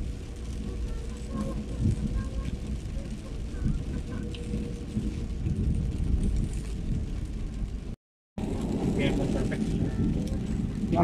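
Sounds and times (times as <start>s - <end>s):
car engine and wet tyres rumble: 0.0s - 11.0s.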